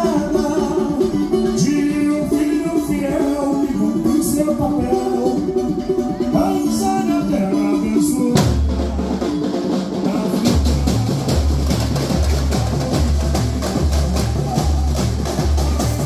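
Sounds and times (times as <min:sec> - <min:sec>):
deep bass drums samba rhythm: 0:00.0 - 0:16.0
pitched melody: 0:00.0 - 0:16.0.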